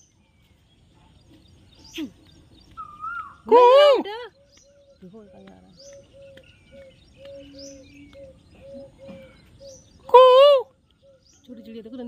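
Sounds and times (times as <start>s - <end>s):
high falling bird chirps: 0.0s - 12.0s.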